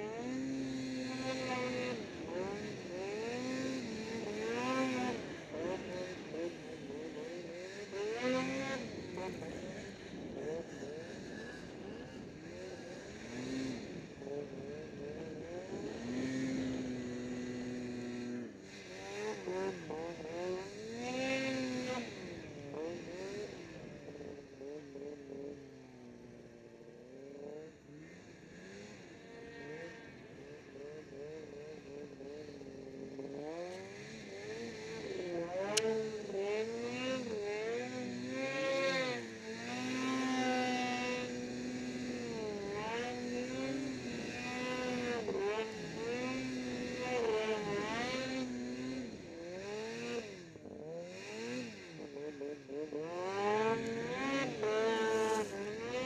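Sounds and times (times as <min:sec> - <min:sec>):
snowmobile engine revving: 0:00.0 - 0:56.0.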